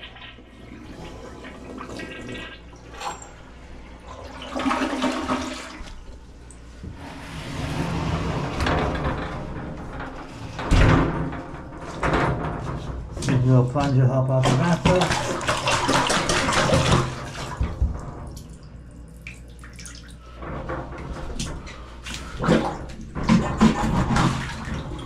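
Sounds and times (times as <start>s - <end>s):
toilet flushing: 0.0s - 25.0s.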